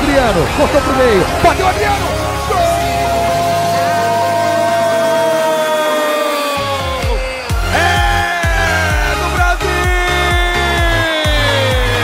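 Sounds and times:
background music: 0.0 - 12.0
commentator shouting goal: 0.0 - 12.0.

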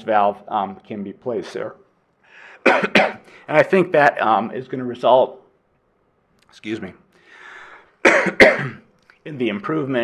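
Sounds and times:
man breathing in: 2.2 - 2.6, 7.2 - 8.0
man coughing: 2.6 - 3.3, 8.0 - 8.9.

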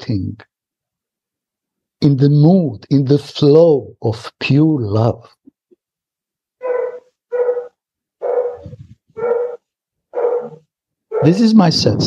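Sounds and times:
dog barking: 6.6 - 11.4.

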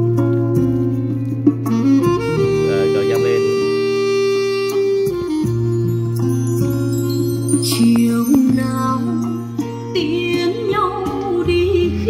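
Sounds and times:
music with voice over speakers: 0.2 - 12.0.

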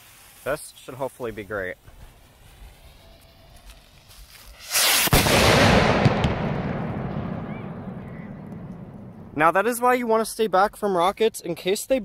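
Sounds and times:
firework rocket rush and bang: 1.8 - 9.4.

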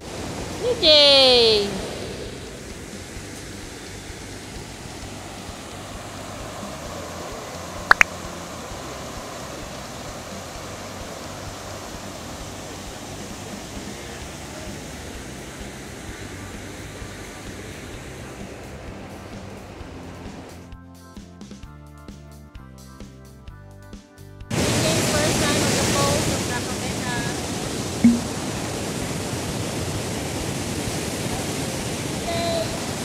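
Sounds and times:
river rapids rushing: 0.0 - 20.6, 24.5 - 33.0
sharp double click: 7.9 - 8.1.

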